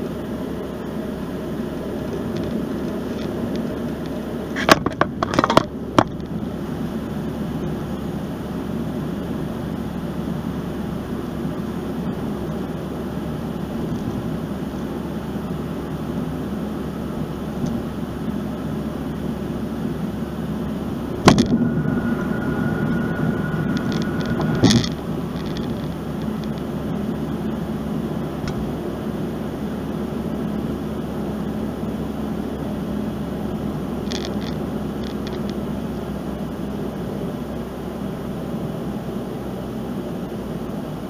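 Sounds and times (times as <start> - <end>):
road and engine noise in car: 0.0 - 41.0
faint high tone: 20.8 - 26.1
sharp thump: 21.2 - 25.9.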